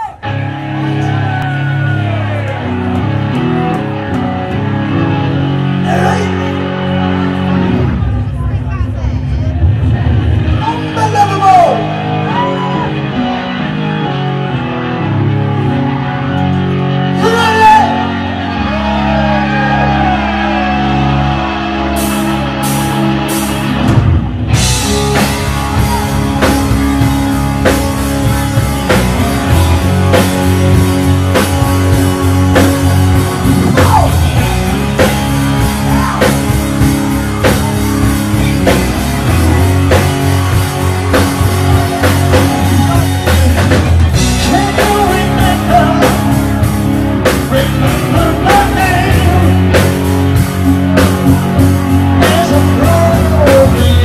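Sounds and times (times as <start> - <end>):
rock band playing chords: 0.0 - 54.0.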